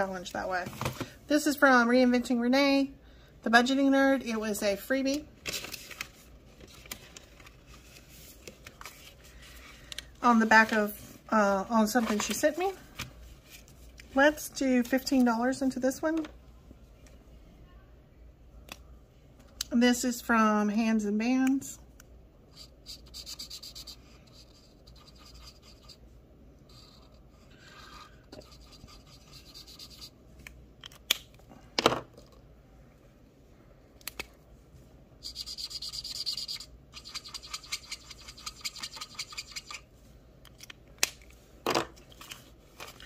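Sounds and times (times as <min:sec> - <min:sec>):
marker scribbling on paper: 0:22.5 - 0:26.0, 0:27.7 - 0:30.1, 0:35.2 - 0:39.8.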